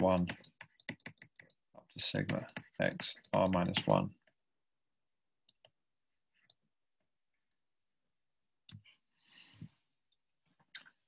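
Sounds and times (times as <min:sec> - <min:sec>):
stylus tapping on screen: 0:00.0 - 0:04.4.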